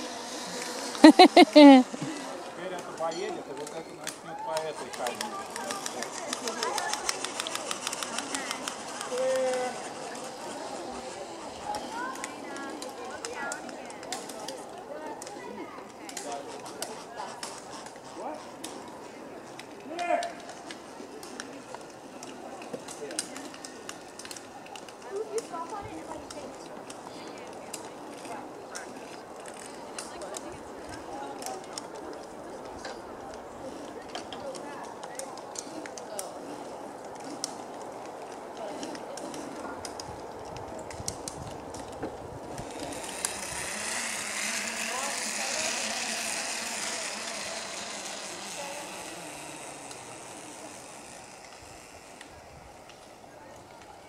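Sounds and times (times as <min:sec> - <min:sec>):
distant indistinct voices: 0:00.0 - 0:01.0, 0:01.8 - 0:54.0.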